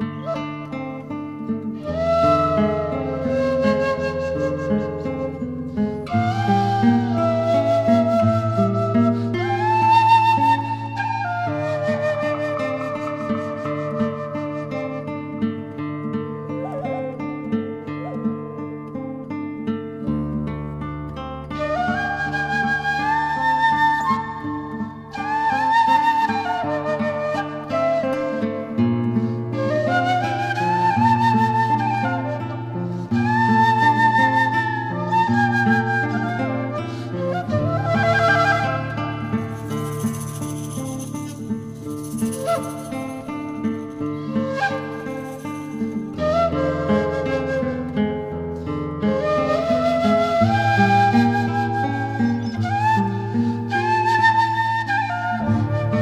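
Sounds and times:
wooden flute melody: 0:00.0 - 0:19.4, 0:21.2 - 0:56.0
high rattling: 0:39.4 - 0:44.2.

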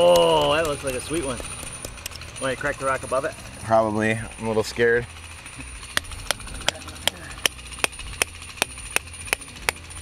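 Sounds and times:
hammer tapping on rock: 0:06.0 - 0:09.8.

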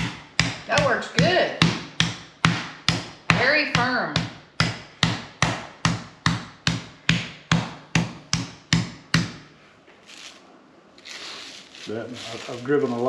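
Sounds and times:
meat mallet pounding steak: 0:00.0 - 0:09.4.

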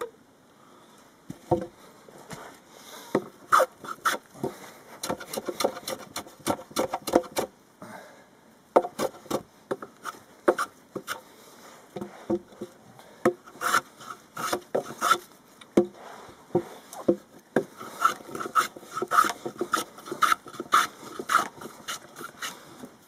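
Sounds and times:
hand tool scraping wood: 0:03.1 - 0:07.5, 0:08.8 - 0:11.3, 0:12.0 - 0:22.9.

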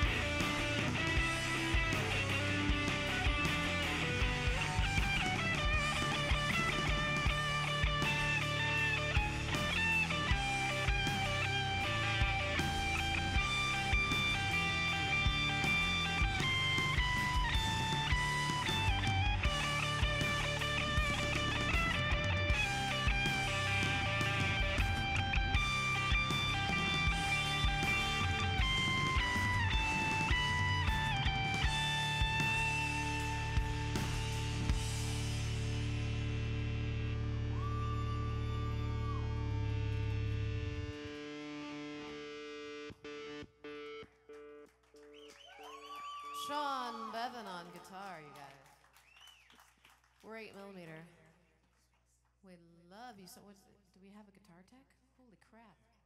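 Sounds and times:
steady low backing: 0:00.0 - 0:37.6
electric guitar melody: 0:00.0 - 0:44.7.

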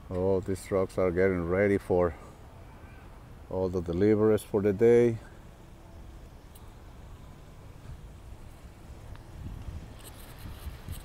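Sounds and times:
wind rumbling on microphone: 0:07.2 - 0:11.0.

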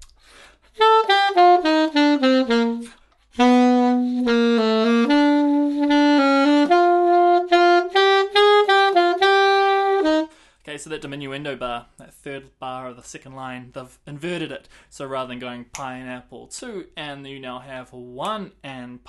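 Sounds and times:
alto saxophone playing: 0:00.7 - 0:10.4.

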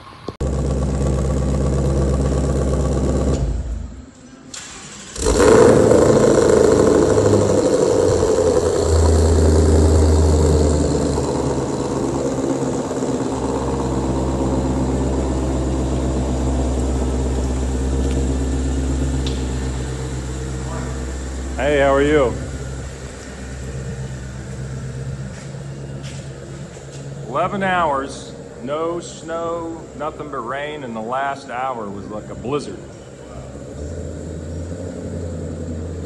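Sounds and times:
steady low droning: 0:00.0 - 0:04.2, 0:05.2 - 0:36.0
car engine starting and idling: 0:00.0 - 0:36.0.

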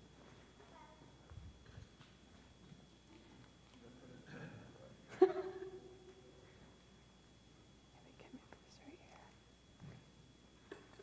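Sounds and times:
faint whispering voices: 0:07.9 - 0:09.4.

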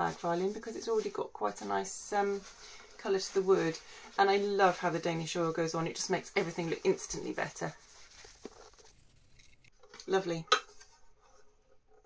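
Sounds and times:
cloth rustling: 0:00.0 - 0:09.8.

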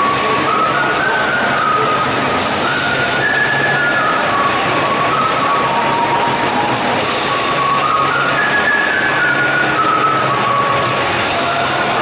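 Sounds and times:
large crowd noise: 0:00.0 - 0:12.0
tune over stadium loudspeakers: 0:00.0 - 0:12.0.

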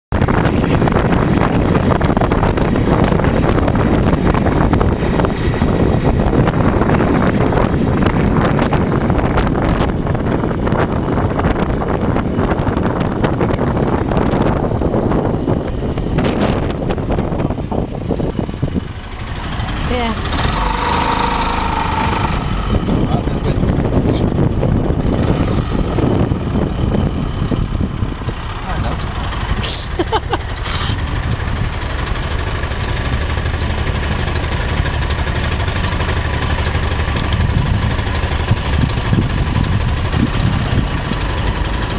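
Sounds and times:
dune buggy engine running: 0:00.1 - 0:41.9
wind noise on microphone: 0:00.1 - 0:41.9.

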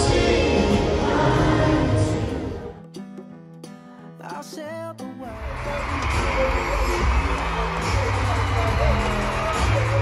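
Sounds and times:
children's choir singing: 0:00.0 - 0:02.8
amplified backing music: 0:00.0 - 0:10.0.

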